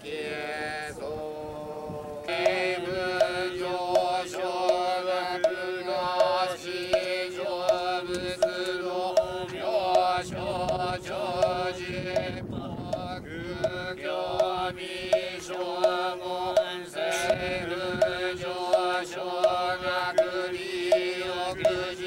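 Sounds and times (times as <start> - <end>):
men chanting in unison: 0.0 - 22.0
regular knocks: 2.3 - 13.8, 14.4 - 22.0.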